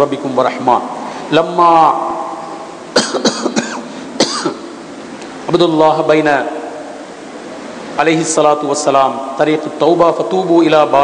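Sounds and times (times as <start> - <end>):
man clearing throat: 3.0 - 4.6
man coughing: 3.0 - 4.7.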